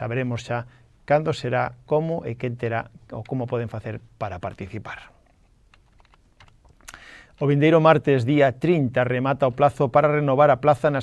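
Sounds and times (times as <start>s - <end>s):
faint scattered clicks: 5.2s - 7.5s.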